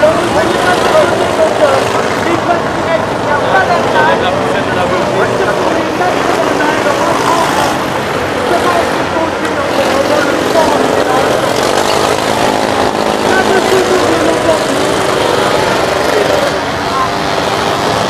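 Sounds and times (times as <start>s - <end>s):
car engines revving: 0.0s - 18.0s
voices: 0.0s - 18.0s.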